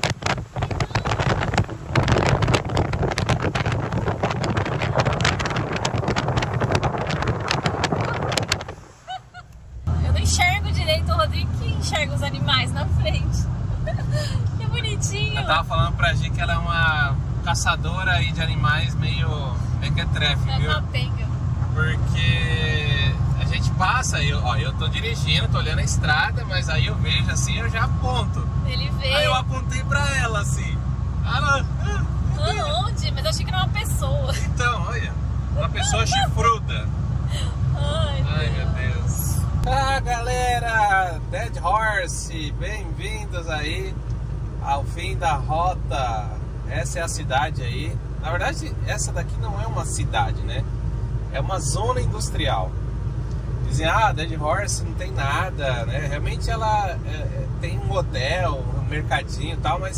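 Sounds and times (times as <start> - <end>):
low engine hum: 0.0 - 59.9
road and wind noise: 0.0 - 59.9
people talking: 0.6 - 1.4, 10.0 - 44.0, 44.6 - 50.6, 51.4 - 52.7, 53.7 - 59.9
people laughing: 9.1 - 9.6.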